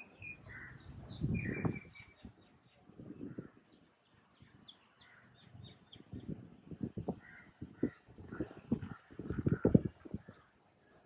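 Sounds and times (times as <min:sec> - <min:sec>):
small birds chirping: 0:00.0 - 0:11.0
crows cawing: 0:00.5 - 0:00.9, 0:07.2 - 0:10.0.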